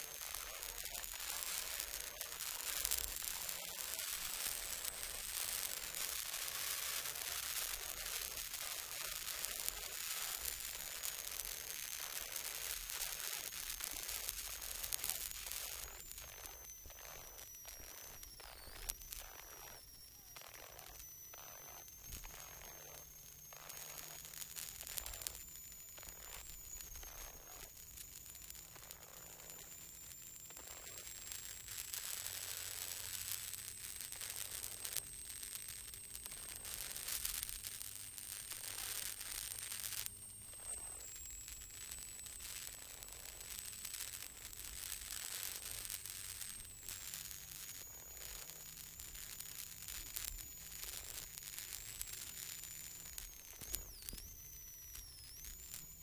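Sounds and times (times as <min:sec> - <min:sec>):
intercom hiss and crackle: 0:00.0 - 0:56.0.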